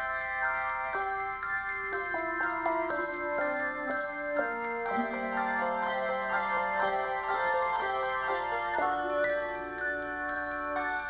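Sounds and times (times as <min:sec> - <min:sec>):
handbell choir ringing: 0:00.0 - 0:11.0.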